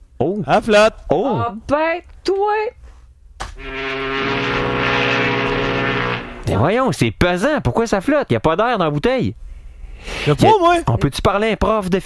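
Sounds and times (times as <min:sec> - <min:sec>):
loud droning tone: 0:03.6 - 0:06.7.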